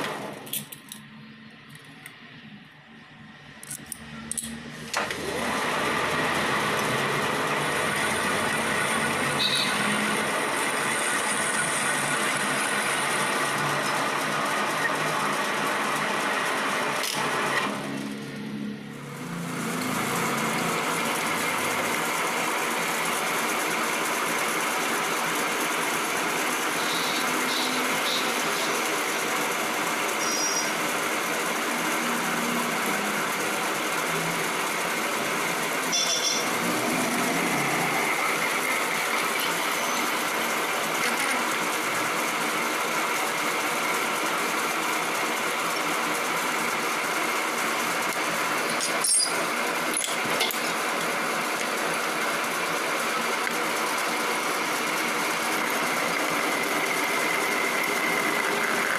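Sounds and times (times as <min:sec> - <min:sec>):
metal lathe machining: 0:00.0 - 0:58.9
high squeaks: 0:35.9 - 0:36.5, 0:48.8 - 0:49.4.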